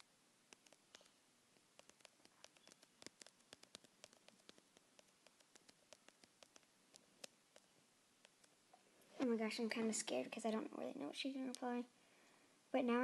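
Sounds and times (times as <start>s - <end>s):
low hiss: 0.0s - 13.0s
typing on phone touchscreen: 0.5s - 1.1s, 1.8s - 8.6s.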